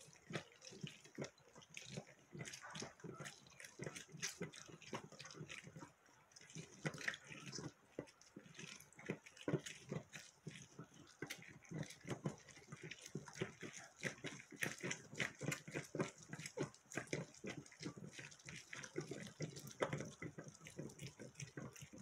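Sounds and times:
wet squelching of fruit on reamer: 0.0s - 22.0s.

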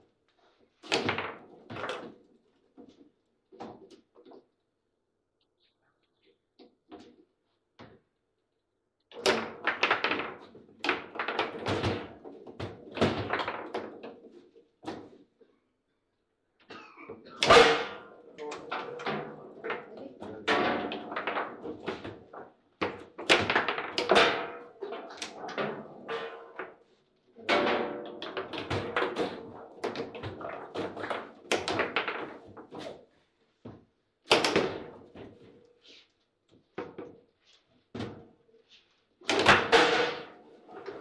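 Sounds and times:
ball slamming into goal: 17.4s - 18.1s
ball cracking against plastic figures: 27.6s - 32.7s.

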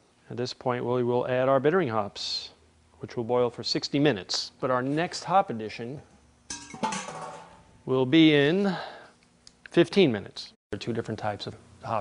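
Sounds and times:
metal cookware clanking: 6.5s - 7.7s.

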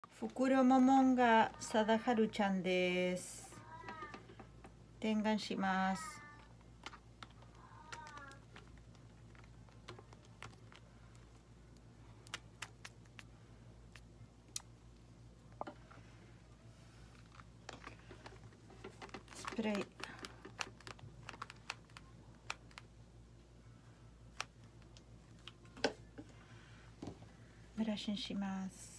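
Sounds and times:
gloved hands clicking on plastic: 6.7s - 13.3s, 17.3s - 22.9s.

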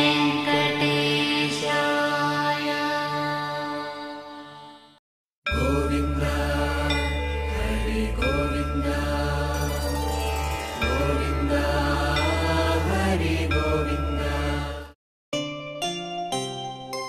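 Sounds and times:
chanted mantra singing: 0.0s - 4.9s, 5.5s - 15.0s.

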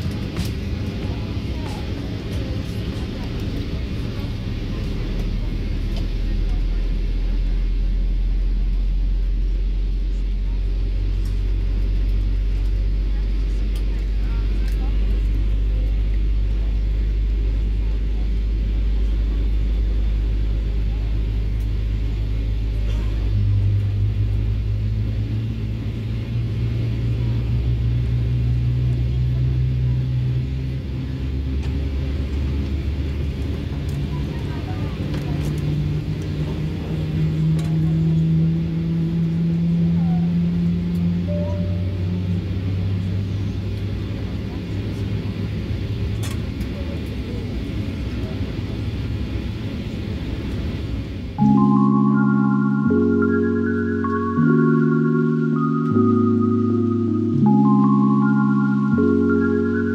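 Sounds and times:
engine spooling hum: 0.0s - 59.9s
jet engine deep drone: 0.0s - 59.9s.

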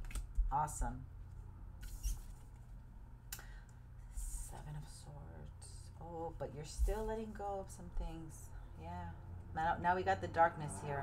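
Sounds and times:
low steady hum: 0.0s - 11.0s
cards sliding and rustling: 1.8s - 2.6s.

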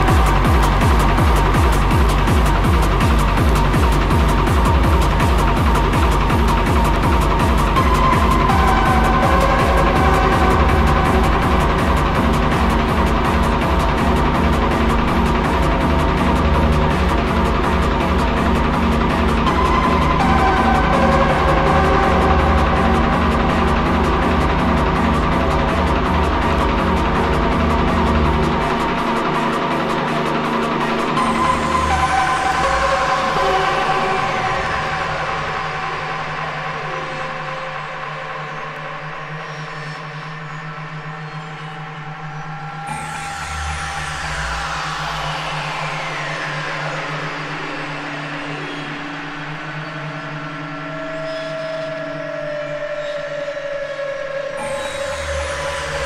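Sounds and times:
kick-drum beat: 0.0s - 29.1s
falling synth sweeps: 0.0s - 56.0s
low synth drone: 0.0s - 56.0s.

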